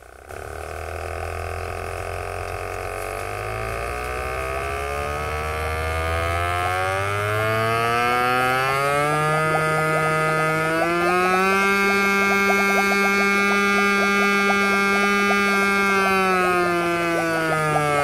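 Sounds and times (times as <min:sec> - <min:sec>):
light crackle: 0:00.0 - 0:05.5
air pump humming rising pitch: 0:00.0 - 0:18.0.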